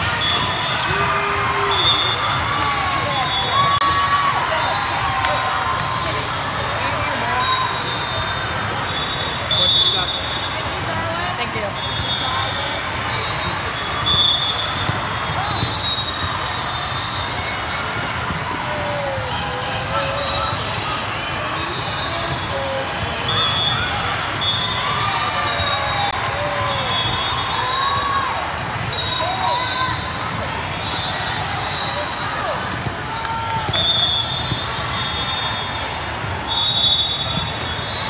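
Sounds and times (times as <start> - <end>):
voices calling and chattering: 0.0 - 38.0
volleyball hits: 13.6 - 20.8, 32.4 - 35.2.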